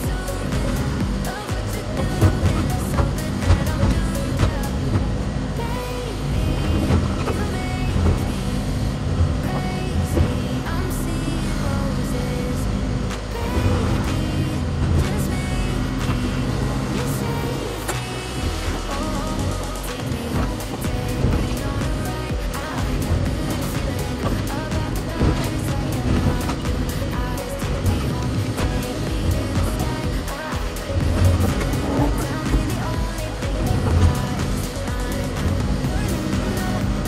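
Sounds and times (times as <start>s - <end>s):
background music: 0.0s - 37.0s
excavator engine under load: 0.0s - 37.0s.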